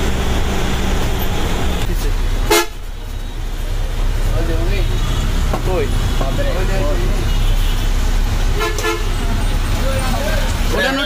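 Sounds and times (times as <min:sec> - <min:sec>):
street traffic: 0:00.0 - 0:11.0
vehicle engine and road noise: 0:00.0 - 0:11.0
vehicle horn toot: 0:02.5 - 0:02.8, 0:07.2 - 0:09.3.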